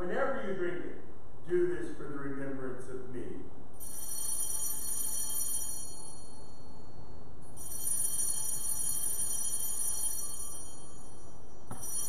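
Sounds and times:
small altar bell ringing: 0:03.8 - 0:12.0.

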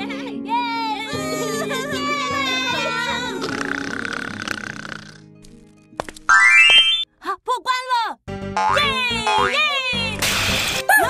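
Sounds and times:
cheerful children's music: 0:00.0 - 0:03.4, 0:06.3 - 0:07.1
springy comic sound effects: 0:06.3 - 0:07.1, 0:08.6 - 0:09.7.

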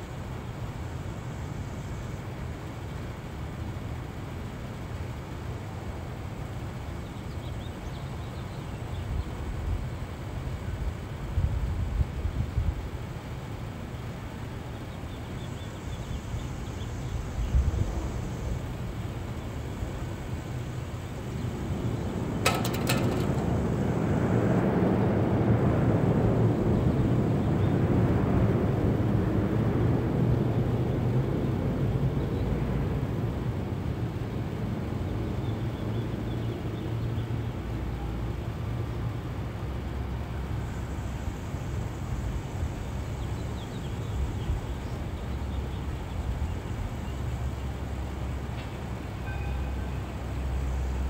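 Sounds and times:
distant engine rumble: 0:20.8 - 0:27.1
clatter of clicks: 0:22.4 - 0:23.9.

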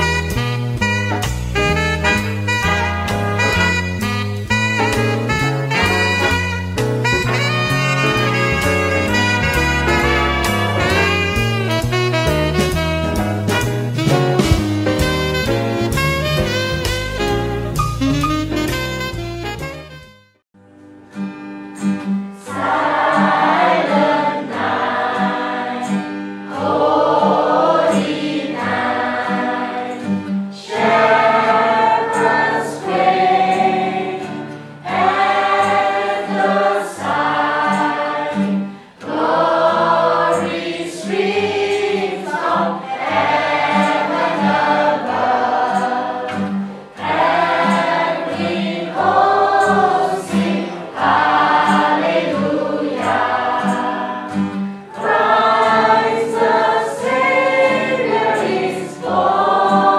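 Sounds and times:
children and adults singing: 0:22.4 - 0:59.9.

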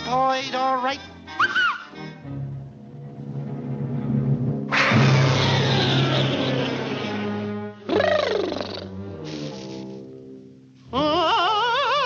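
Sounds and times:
cartoon cymbal crash: 0:04.7 - 0:07.5.

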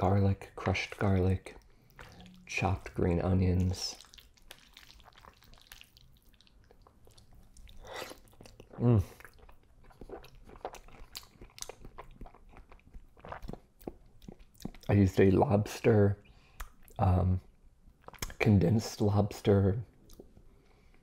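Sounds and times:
wet chewing and mouth smacks: 0:01.5 - 0:02.5, 0:03.9 - 0:14.9, 0:16.6 - 0:17.0, 0:18.0 - 0:18.4, 0:20.0 - 0:20.4.

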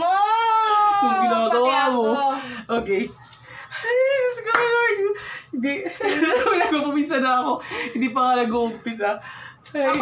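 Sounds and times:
sharp hand clap: 0:04.5 - 0:04.8.

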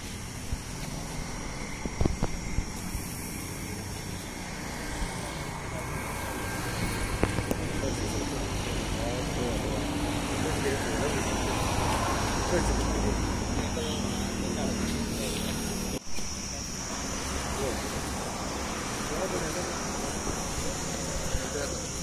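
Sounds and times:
murmured talk: 0:05.3 - 0:22.0.

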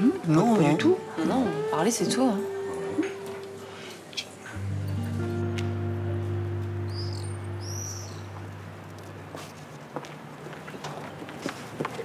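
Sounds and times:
low synthesizer chord: 0:04.5 - 0:09.5
short high chirps: 0:04.9 - 0:08.5.

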